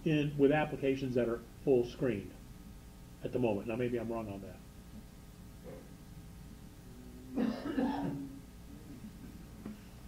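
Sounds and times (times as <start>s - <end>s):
person coughing: 7.4s - 8.3s.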